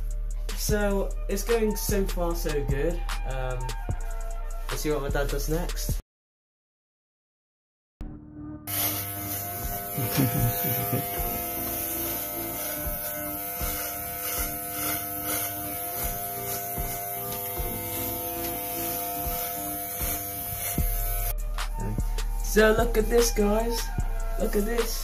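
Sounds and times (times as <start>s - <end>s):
electric hair clippers buzzing: 8.7s - 22.0s.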